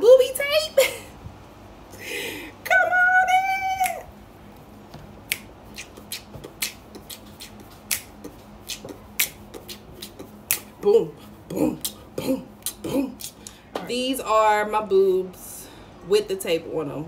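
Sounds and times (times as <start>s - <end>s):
finger snaps: 3.8s - 4.0s, 5.3s - 10.7s, 12.6s - 13.6s.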